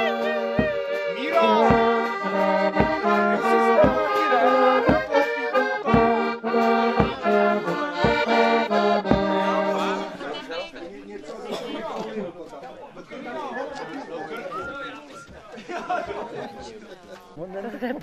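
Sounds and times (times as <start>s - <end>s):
people chatting: 0.0s - 2.1s, 3.0s - 6.2s, 9.1s - 18.0s
low beat: 0.0s - 10.2s
accordion playing a tune: 0.0s - 10.7s.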